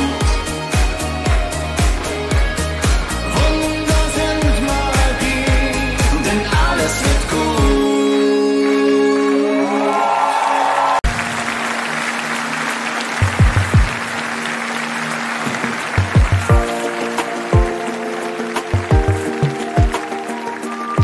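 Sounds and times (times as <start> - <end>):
instrumental intro chords: 0.0 - 9.8, 11.1 - 21.0
audience clapping: 0.0 - 21.0.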